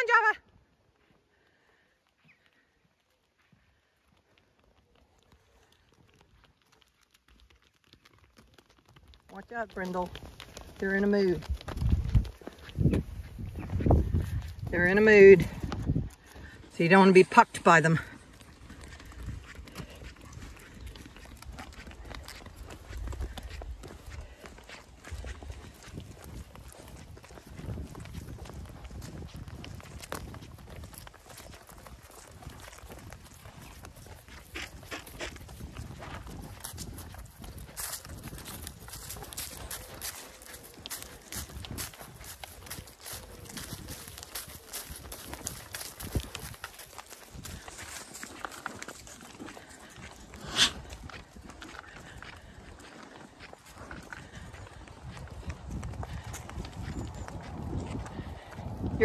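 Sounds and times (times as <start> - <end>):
hooves clicking on tarmac: 0.0 - 59.0.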